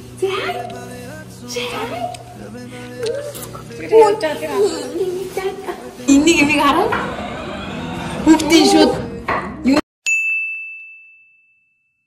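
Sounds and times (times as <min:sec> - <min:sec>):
bright ding: 0:10.0 - 0:12.0.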